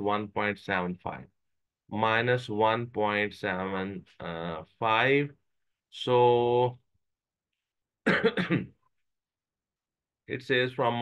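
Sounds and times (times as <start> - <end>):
man clearing his throat: 8.0 - 8.8.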